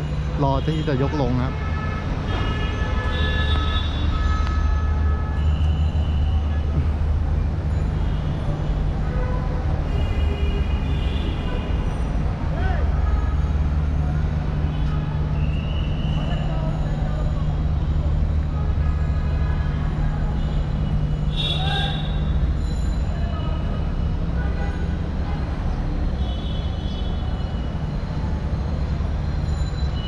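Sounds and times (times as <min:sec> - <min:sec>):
city traffic din: 0:00.0 - 0:30.0.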